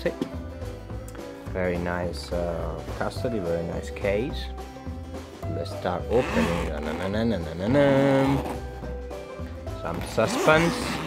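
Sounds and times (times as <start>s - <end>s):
background music: 0.0s - 11.0s
zipper pulled open: 6.1s - 8.9s, 9.8s - 11.0s.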